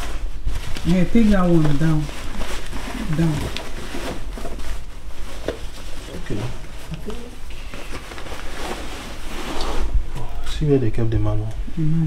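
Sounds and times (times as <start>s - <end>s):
fabric rustling: 0.0s - 10.1s
low steady hum: 0.0s - 12.0s.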